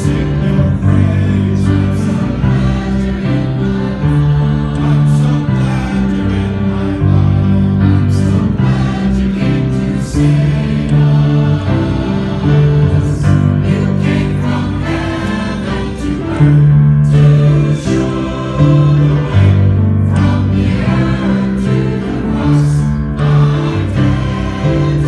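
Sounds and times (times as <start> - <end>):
mixed choir singing in parts: 0.0 - 25.0.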